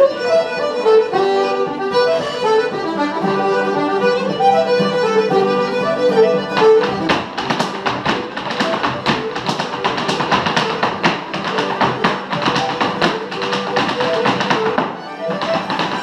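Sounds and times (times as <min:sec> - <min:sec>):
traditional instrumental music: 0:00.0 - 0:16.0
shoes tapping on wooden floor: 0:06.4 - 0:16.0.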